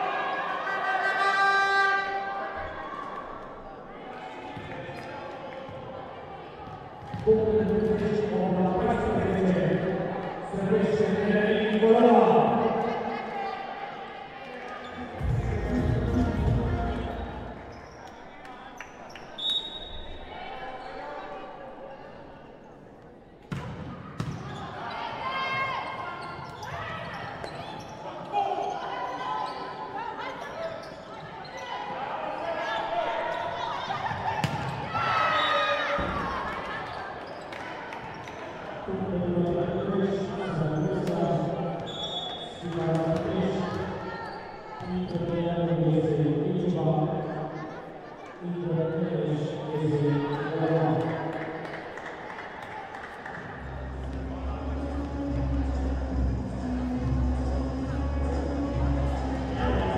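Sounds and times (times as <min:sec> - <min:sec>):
voices of players and spectators: 0:00.0 - 0:59.9.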